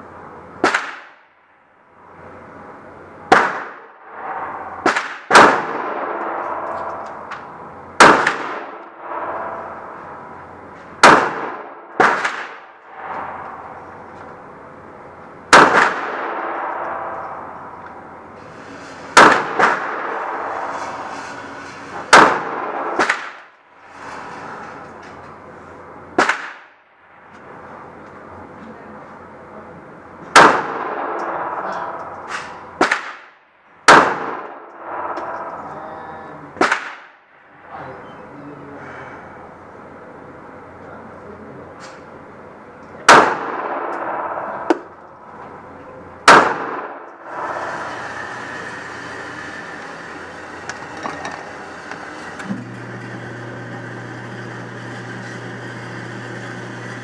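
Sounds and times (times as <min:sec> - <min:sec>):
pistol shots echoing indoors: 0:03.3 - 0:07.0, 0:08.0 - 0:09.6, 0:11.0 - 0:13.7, 0:15.5 - 0:17.5, 0:26.2 - 0:26.8, 0:30.3 - 0:35.5, 0:36.6 - 0:37.4, 0:46.2 - 0:47.2.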